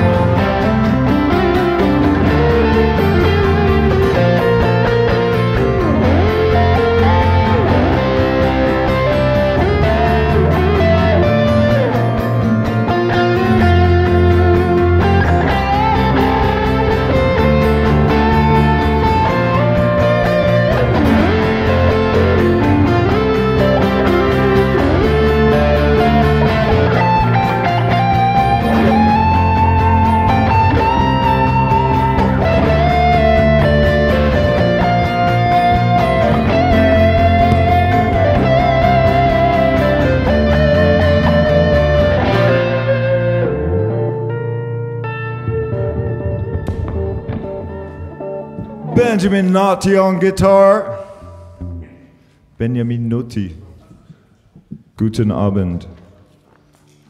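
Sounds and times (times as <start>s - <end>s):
electric guitars: 0.0s - 50.2s
acoustic guitar strummed: 0.0s - 52.4s
bass guitar: 0.0s - 52.9s.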